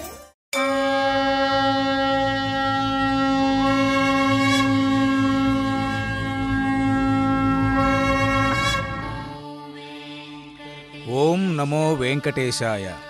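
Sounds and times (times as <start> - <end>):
conch shell blown: 0.5 - 9.5
low rumble: 2.3 - 9.5.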